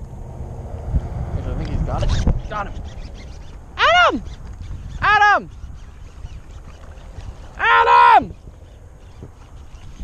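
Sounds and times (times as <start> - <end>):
wind rumble on microphone: 0.0 - 10.0
man shouting long calls: 3.8 - 4.2, 5.0 - 5.5, 7.6 - 8.3.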